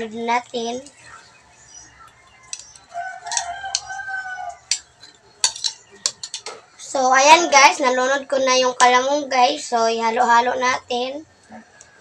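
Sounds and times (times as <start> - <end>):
rooster crowing: 2.0 - 4.8, 11.5 - 12.0.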